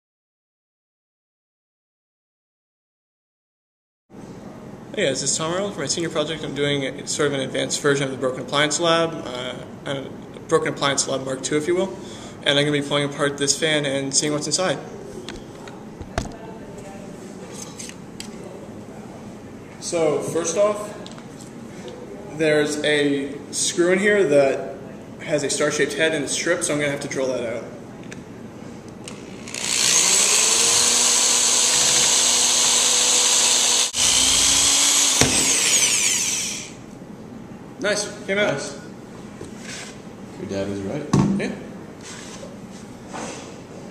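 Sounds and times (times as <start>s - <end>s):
electric drill drilling: 29.1s - 36.8s.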